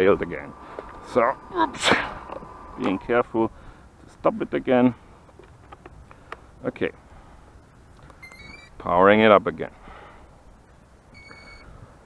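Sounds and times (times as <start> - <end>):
electronic beep: 8.2 - 8.7, 11.1 - 11.7.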